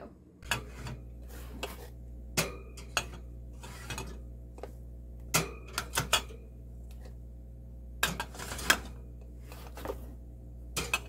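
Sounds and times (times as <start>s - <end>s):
steady low hum: 0.0s - 11.0s
glass jars clinking on metal shelving: 0.4s - 1.0s, 2.4s - 4.2s, 5.3s - 6.4s, 8.0s - 9.0s, 10.8s - 11.0s.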